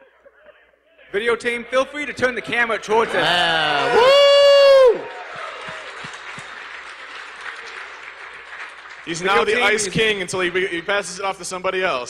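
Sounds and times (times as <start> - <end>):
voices: 0.0 - 4.4
audience applauding: 2.8 - 11.1.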